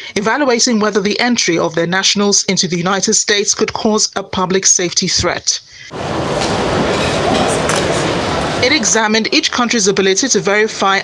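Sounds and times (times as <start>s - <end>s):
loud wash of noise: 5.9s - 8.9s
indistinct voices: 5.9s - 9.5s.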